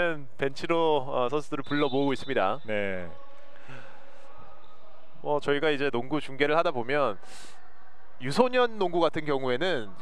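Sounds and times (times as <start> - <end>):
gymnasium room noise: 0.0 - 10.0
faint distant voices: 1.7 - 5.8.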